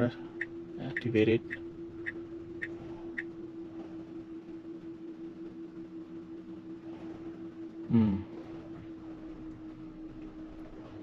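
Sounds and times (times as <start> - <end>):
electric car hum: 0.0 - 11.0.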